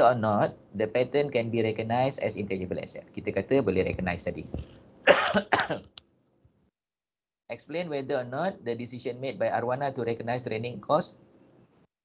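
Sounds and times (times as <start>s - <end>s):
man coughing: 5.0s - 5.9s.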